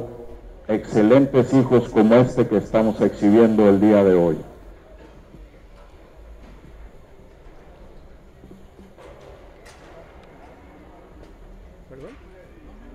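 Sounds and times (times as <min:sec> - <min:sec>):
distant indistinct voices: 0:00.0 - 0:12.9.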